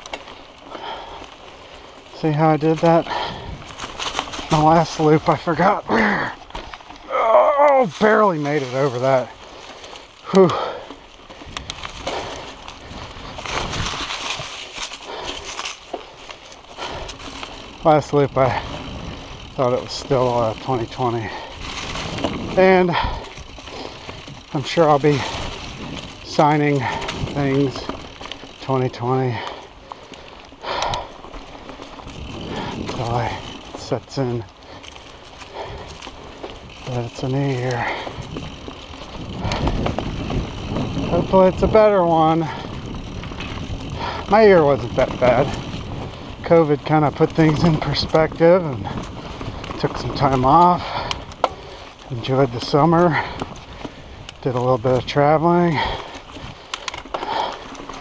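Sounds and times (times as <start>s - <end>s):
bike rattling: 0.0s - 58.0s
bike tyres crunching over leaves: 0.0s - 58.0s
bike rattling knocks: 30.6s - 58.0s
wind on microphone: 38.0s - 41.8s, 42.4s - 46.5s.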